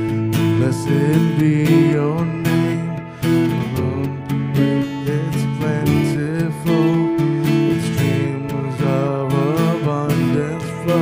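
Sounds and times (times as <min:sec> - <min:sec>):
strummed acoustic guitar: 0:00.0 - 0:11.0
worship band playing: 0:00.0 - 0:11.0.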